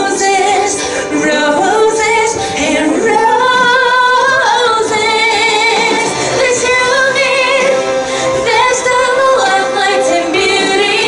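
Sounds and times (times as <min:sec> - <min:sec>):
woman singing with vibrato: 0:00.0 - 0:11.0.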